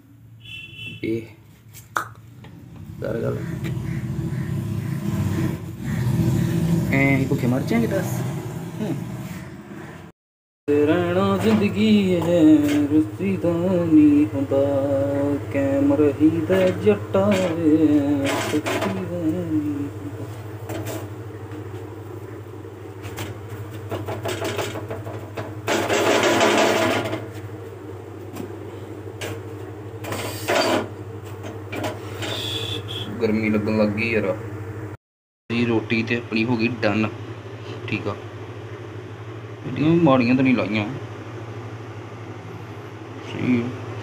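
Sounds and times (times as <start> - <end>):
gas stove hum: 2.2 - 10.1, 10.7 - 44.0.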